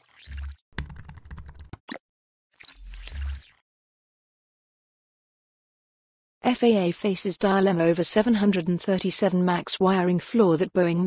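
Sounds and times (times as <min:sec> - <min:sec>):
keyboard typing: 0:00.3 - 0:02.0.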